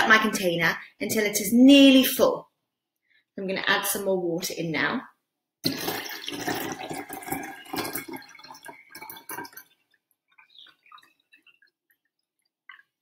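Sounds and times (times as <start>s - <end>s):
water dripping and trickling: 5.6s - 13.0s
water pouring into glass jar: 5.6s - 13.0s.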